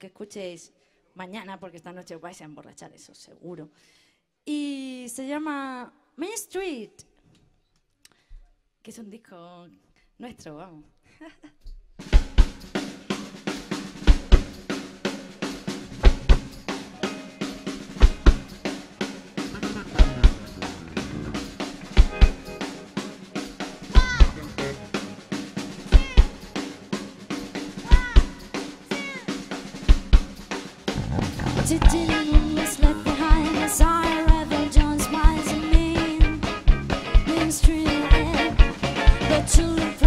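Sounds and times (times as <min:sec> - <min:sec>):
drum kit beat: 0:12.1 - 0:40.0
banjo: 0:19.4 - 0:21.5, 0:30.9 - 0:40.0
guitars: 0:19.4 - 0:25.4, 0:30.9 - 0:40.0.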